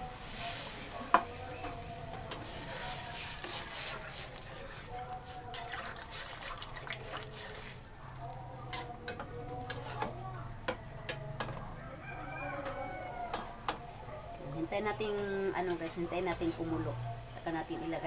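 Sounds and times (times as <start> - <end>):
metal spatula scraping a wok: 2.2 - 11.6.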